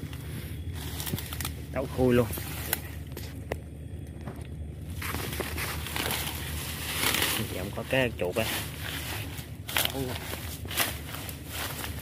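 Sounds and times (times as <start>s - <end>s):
footsteps through grass: 0.0s - 2.9s, 4.9s - 12.0s
leaves brushing: 0.0s - 3.1s, 4.8s - 12.0s
twigs snapping: 0.0s - 7.7s, 8.9s - 12.0s.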